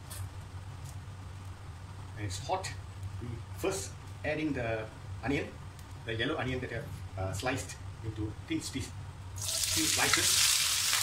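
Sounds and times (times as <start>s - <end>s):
steady low hum: 0.0s - 10.3s
oil crackling in a wok: 9.4s - 11.0s.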